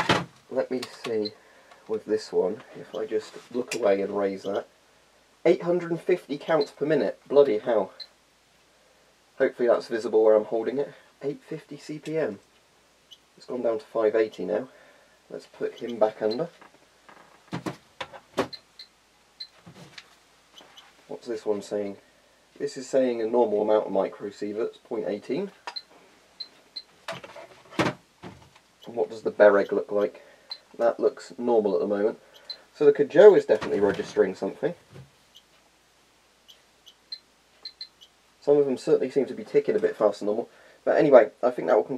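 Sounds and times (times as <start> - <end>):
plastic knocks: 17.5 - 18.5
geiger counter chirps: 36.5 - 38.2.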